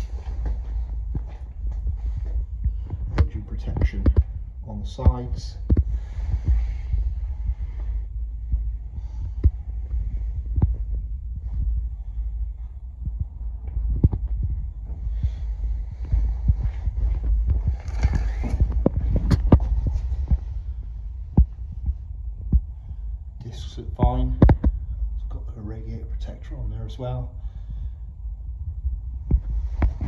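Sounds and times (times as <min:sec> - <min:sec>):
steady low hum: 0:00.0 - 0:30.0.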